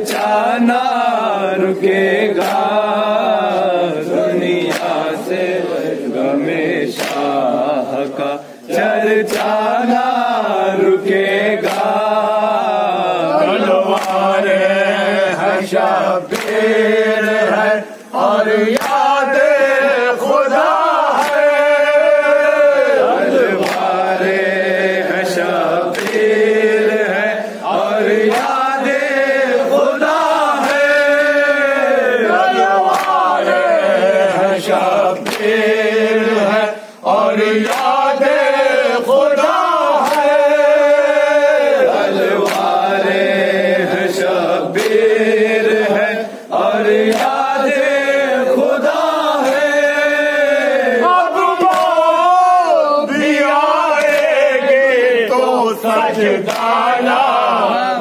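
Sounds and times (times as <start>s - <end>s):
hands slapping chests: 0.0s - 0.4s, 2.4s - 3.6s, 4.6s - 5.2s, 6.9s - 9.8s, 11.6s - 12.8s, 13.8s - 14.5s, 15.8s - 24.4s, 25.3s - 33.8s, 34.7s - 35.8s, 37.4s - 41.4s, 42.2s - 43.0s, 44.7s - 45.2s, 46.9s - 47.6s, 49.0s - 52.5s, 53.5s - 54.6s, 56.0s - 57.5s
men chanting in unison: 0.0s - 58.0s.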